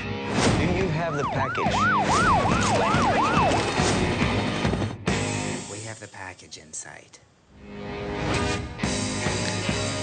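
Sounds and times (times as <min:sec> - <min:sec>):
police siren yelping: 0:00.9 - 0:03.8.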